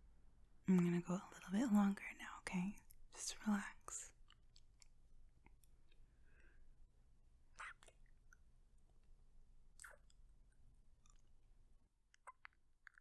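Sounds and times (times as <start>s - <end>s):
wet lip smacks: 7.6s - 8.5s, 9.7s - 10.4s.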